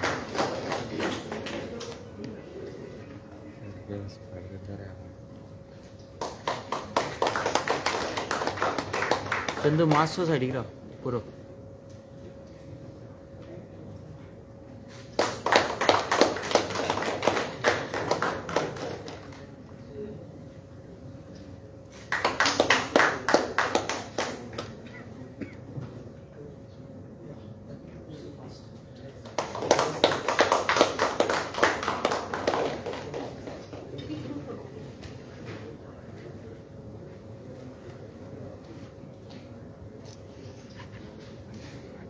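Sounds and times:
people clapping: 0:00.0 - 0:02.8, 0:05.9 - 0:10.6, 0:14.9 - 0:19.9, 0:21.9 - 0:25.2, 0:29.1 - 0:34.7.

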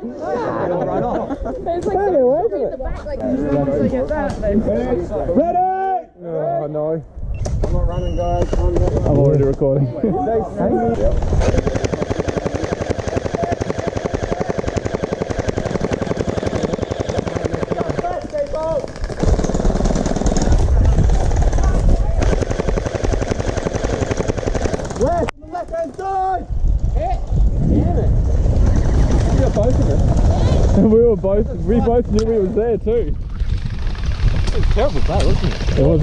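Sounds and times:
gel blaster firing full auto: 0:11.0 - 0:25.2.

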